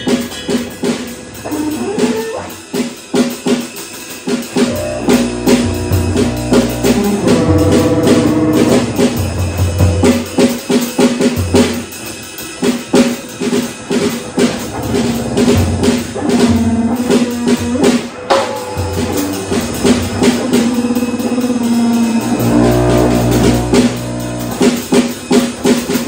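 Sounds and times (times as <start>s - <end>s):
drum and cymbal strokes: 0.0s - 26.0s
held pitched tones: 1.4s - 2.6s, 4.6s - 10.4s, 14.6s - 25.0s
sustained low drones: 4.6s - 10.0s, 14.6s - 24.8s.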